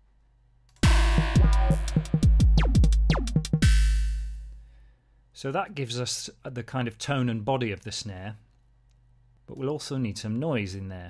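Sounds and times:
drum machine pattern: 0:00.8 - 0:04.6.

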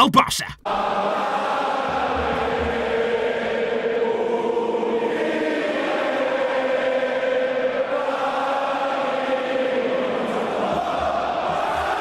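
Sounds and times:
group chanting: 0:00.6 - 0:12.0.

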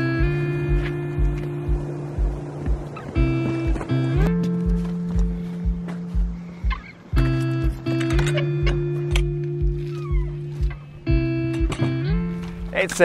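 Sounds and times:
steady low beat: 0:00.0 - 0:13.0
sustained chords: 0:00.0 - 0:13.0.

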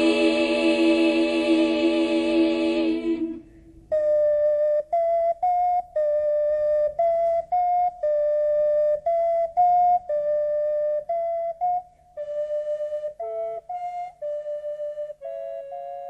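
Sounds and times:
flute-like wind instrument melody: 0:00.0 - 0:16.0.

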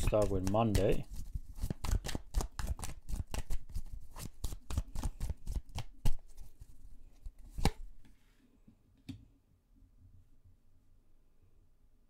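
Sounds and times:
cards being shuffled: 0:00.0 - 0:07.9.

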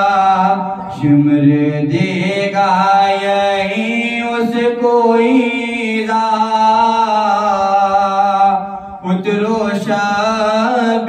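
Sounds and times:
man chanting into a microphone: 0:00.0 - 0:11.0.

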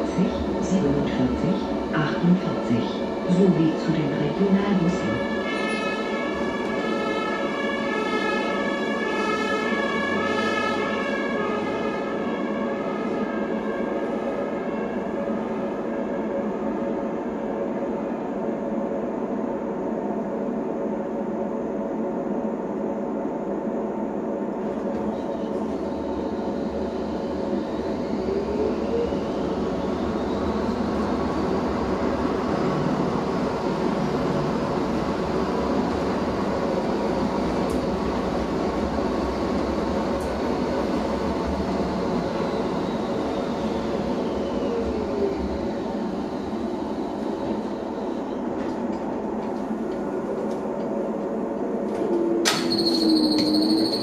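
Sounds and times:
tram running noise: 0:00.0 - 0:54.0
siren outside: 0:51.9 - 0:54.0.

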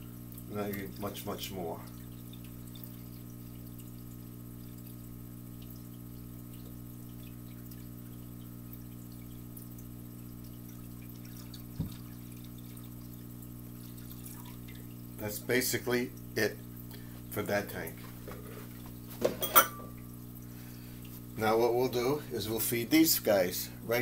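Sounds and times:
water pouring into aquarium: 0:00.0 - 0:19.2, 0:19.9 - 0:24.0
low electrical hum: 0:00.0 - 0:24.0.

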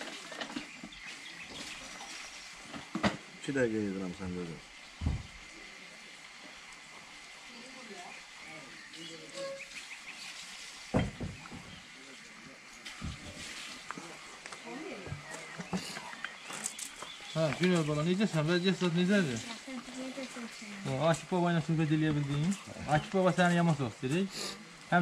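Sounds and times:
sharp knocks: 0:10.9 - 0:11.7
faint distant voices: 0:11.0 - 0:25.0.

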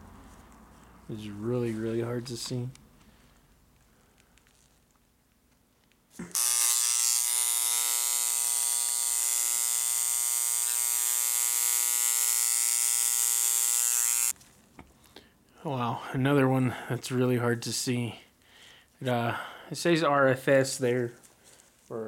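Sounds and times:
electric engraver buzzing: 0:06.2 - 0:14.4.

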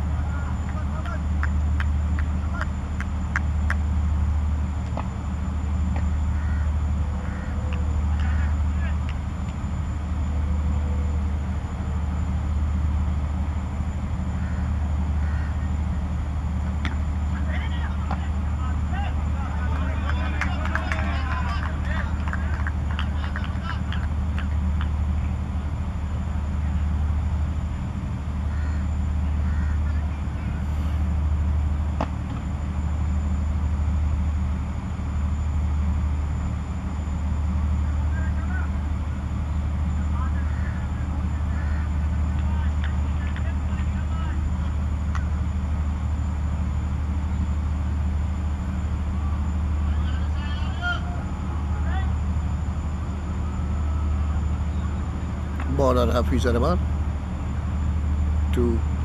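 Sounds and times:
steady low rumble: 0:00.0 - 0:59.0
distant shouts and calls: 0:06.0 - 0:09.3, 0:14.2 - 0:25.7, 0:28.3 - 0:31.2, 0:37.6 - 0:45.9, 0:49.0 - 0:55.9.

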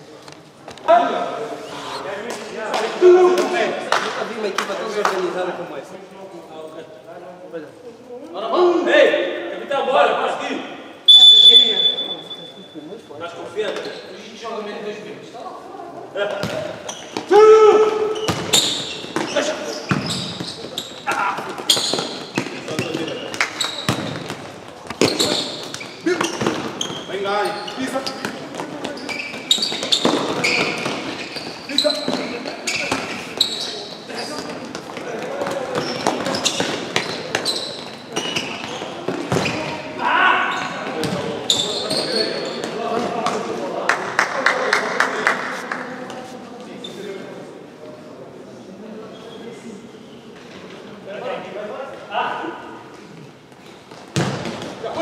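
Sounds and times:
ball kicked and bouncing on court: 0:16.3 - 0:17.3, 0:17.9 - 0:27.0, 0:38.6 - 0:39.8, 0:40.9 - 0:41.4, 0:53.9 - 0:54.8.

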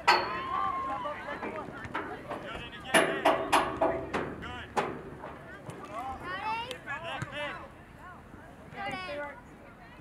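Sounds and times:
voices shouting: 0:00.1 - 0:01.6.

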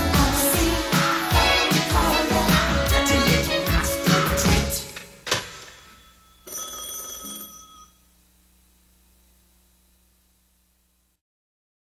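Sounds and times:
telephone ringing: 0:05.4 - 0:08.1.

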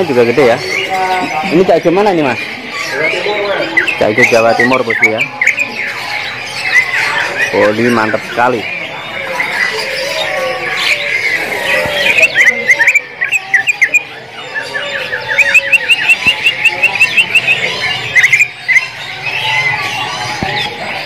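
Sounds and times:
bird chirping sharply: 0:00.0 - 0:21.0
other birds calling: 0:00.0 - 0:21.0.

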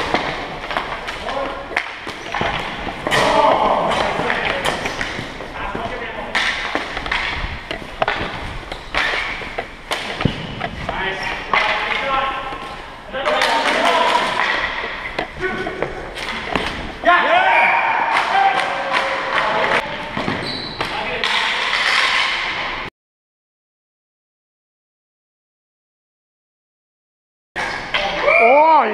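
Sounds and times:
players shouting: 0:03.0 - 0:04.8, 0:17.0 - 0:19.8
plastic sticks clacking: 0:06.3 - 0:15.4.

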